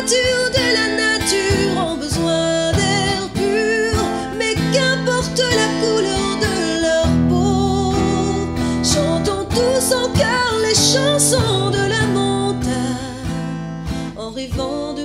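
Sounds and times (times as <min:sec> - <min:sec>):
strummed acoustic guitar: 0:00.0 - 0:15.0
woman singing: 0:00.0 - 0:15.0.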